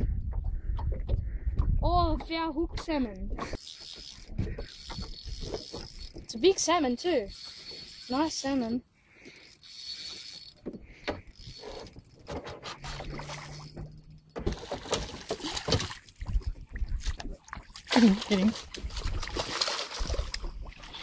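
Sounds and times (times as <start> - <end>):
fishing reel clicking: 3.4 - 12.3, 12.9 - 14.4
fish splashing in water: 12.8 - 21.0.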